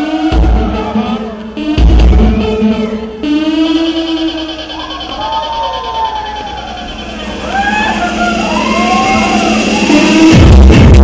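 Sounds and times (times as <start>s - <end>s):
siren-like wailing in dance music: 0.0s - 11.0s.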